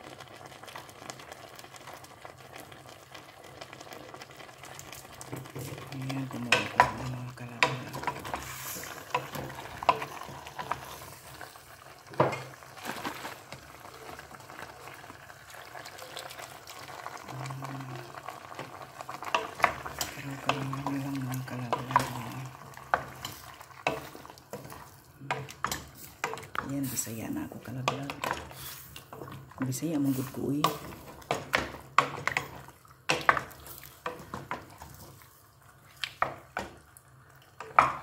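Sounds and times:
meat sizzling: 0:00.0 - 0:38.0.

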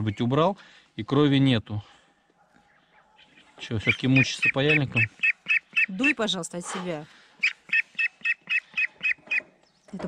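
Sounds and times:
duckling peeping: 0:03.2 - 0:06.3, 0:07.4 - 0:09.5.

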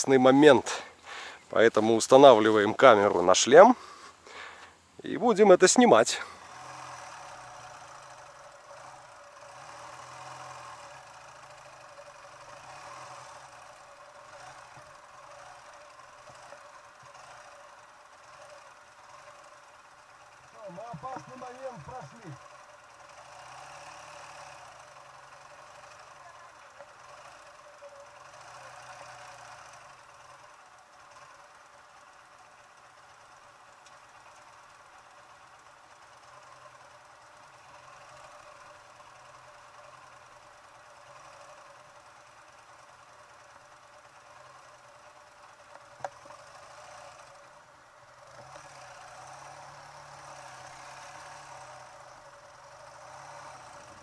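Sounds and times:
motorcycle engine at low revs: 0:00.0 - 0:54.0.

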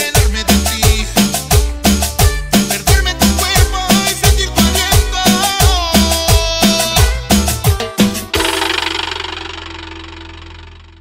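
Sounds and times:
cumbia song final chord: 0:00.0 - 0:10.9
held bass note: 0:08.2 - 0:11.0.

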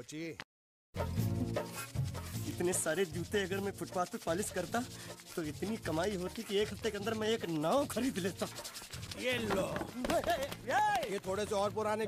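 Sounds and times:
shoe brush scrubbing: 0:01.0 - 0:11.8
person's wordless voice: 0:02.4 - 0:08.6, 0:09.2 - 0:12.0.

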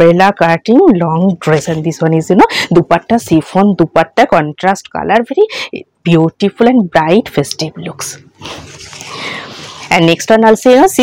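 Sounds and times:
plastic packaging rustling: 0:08.4 - 0:09.9
clothing fabric rustling: 0:08.4 - 0:10.2.

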